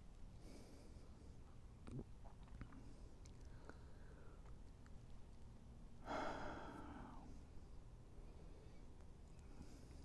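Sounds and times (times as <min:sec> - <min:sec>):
person breathing noisily: 0:06.0 - 0:07.5.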